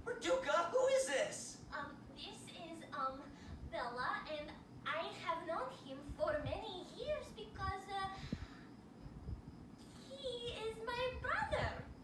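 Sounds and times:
woman's voice: 1.7 - 8.2, 9.9 - 11.9.

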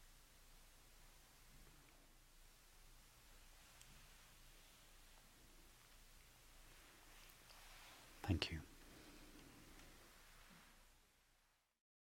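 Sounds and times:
man saying thank you: 8.2 - 8.7.

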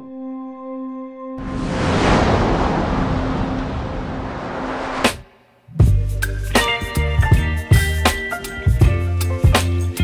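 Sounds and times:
whoosh sound effect: 1.4 - 5.3.

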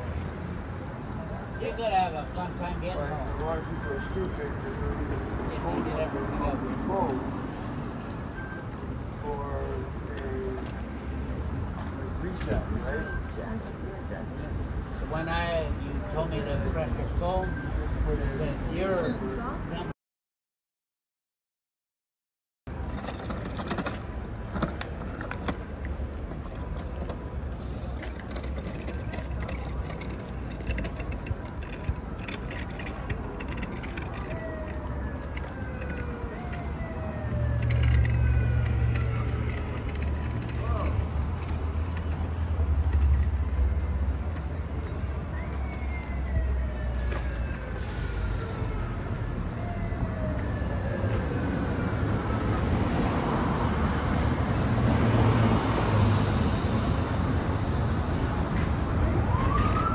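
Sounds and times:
traffic on the road: 0.0 - 20.0, 22.7 - 59.9.

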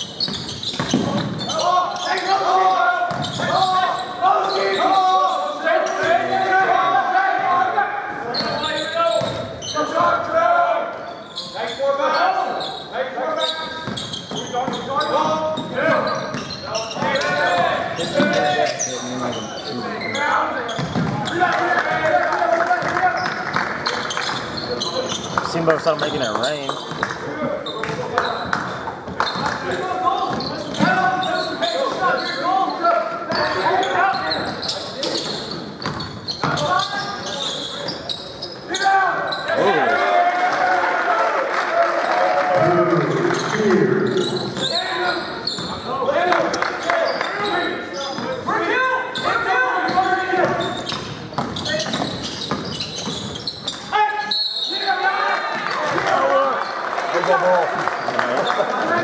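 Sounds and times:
basketball bouncing on hardwood: 20.8 - 21.2.

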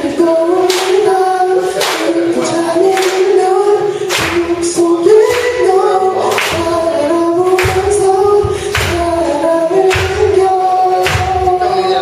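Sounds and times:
lead vocalist singing: 0.0 - 12.0.

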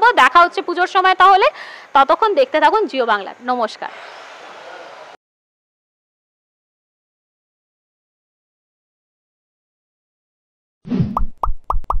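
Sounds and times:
cartoon pops rising in pitch: 10.9 - 12.0.

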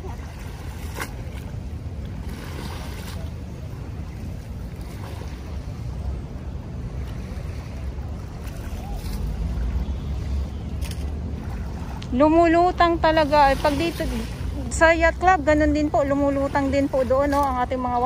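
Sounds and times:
small waves lapping at shore: 0.0 - 18.0.

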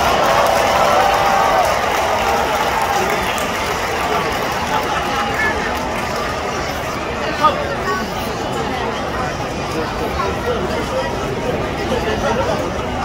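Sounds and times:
crowd hubbub: 0.0 - 13.0.

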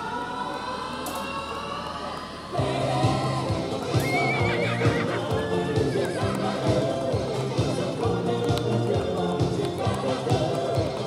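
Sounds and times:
background music with steady beat: 2.5 - 11.0
horse whinnying: 4.0 - 6.0.

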